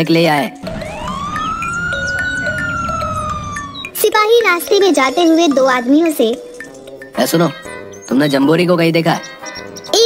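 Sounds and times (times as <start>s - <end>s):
siren wail: 0.6s - 4.1s
low rumble: 0.6s - 4.2s.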